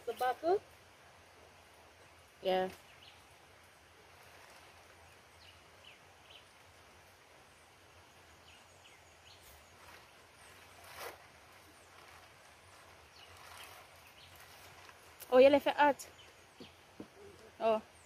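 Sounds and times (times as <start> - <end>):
rural outdoor ambience: 0.0 - 18.0.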